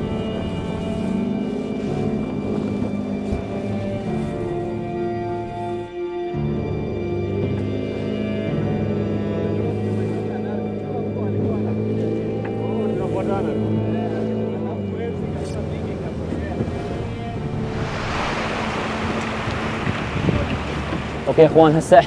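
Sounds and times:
boat rushing over choppy water: 0.0 - 6.0, 9.0 - 22.0
music with long held tones: 0.0 - 22.0.

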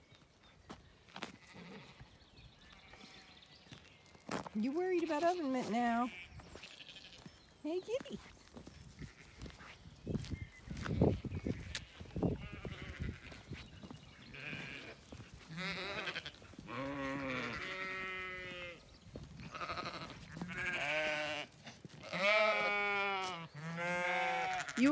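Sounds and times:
sheep bleating: 5.0 - 7.3, 9.0 - 9.8, 10.9 - 13.5, 14.2 - 18.8, 19.4 - 24.9.

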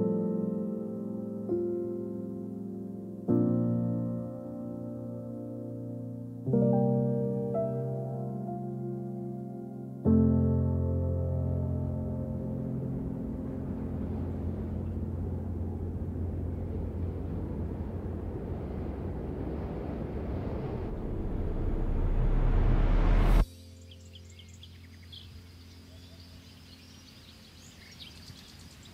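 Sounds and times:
low drone with hiss: 10.1 - 28.9
rising whoosh: 13.0 - 24.4
bird chirps: 23.6 - 28.9.

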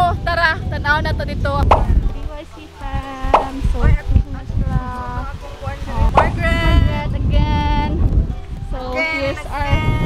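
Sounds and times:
women talking: 0.0 - 8.0, 8.7 - 10.0
wind rumbling on microphone: 0.0 - 10.0
sharp pop: 1.6 - 2.2, 3.3 - 4.0, 6.1 - 6.4.

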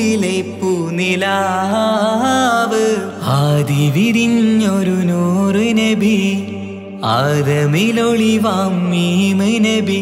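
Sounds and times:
person singing devotional song: 0.0 - 10.0.

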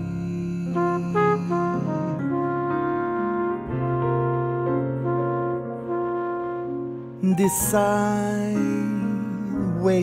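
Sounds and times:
brass horn melody: 0.0 - 9.1.

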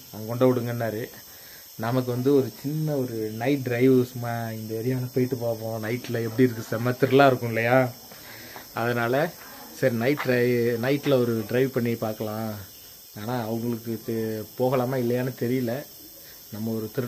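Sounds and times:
crickets chirring: 0.0 - 17.0
man talking: 0.1 - 1.2, 1.8 - 8.0, 8.7 - 15.9, 16.5 - 17.0.

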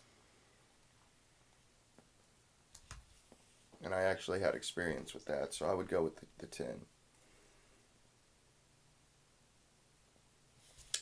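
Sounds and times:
man speaking: 3.8 - 6.9.

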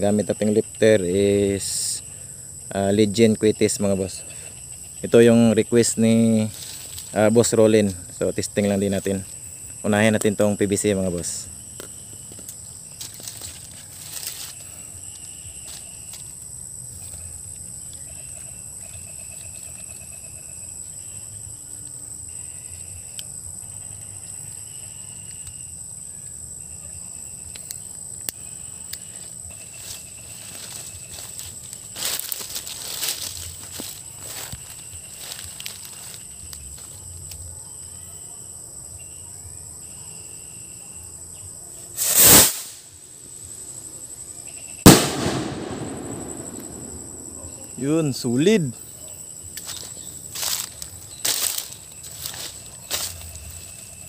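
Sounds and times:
insects trilling: 0.0 - 54.0
rocket lifting off whoosh: 44.9 - 47.4
rocket bursting bang: 44.9 - 47.9.

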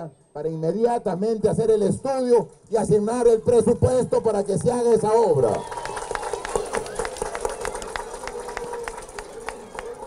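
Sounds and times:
crowd applause: 5.4 - 10.0.

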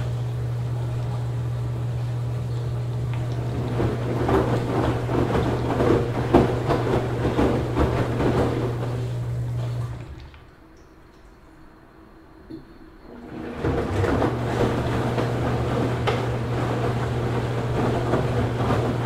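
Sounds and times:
laundry sloshing in drum: 0.0 - 11.2, 13.0 - 19.0
washing machine motor hum: 0.0 - 19.0.

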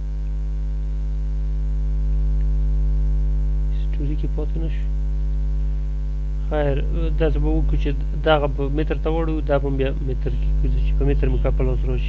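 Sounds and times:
low electrical hum: 0.0 - 12.0
man speaking: 3.7 - 4.9, 6.4 - 12.0.

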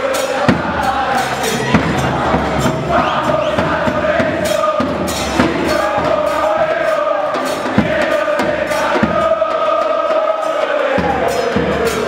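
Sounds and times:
crowd singing a chant: 0.0 - 12.0.

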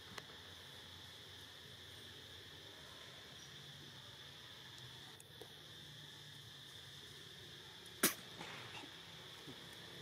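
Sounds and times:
faint high-pitched hum: 0.0 - 10.0
faint ticks: 4.7 - 5.6.

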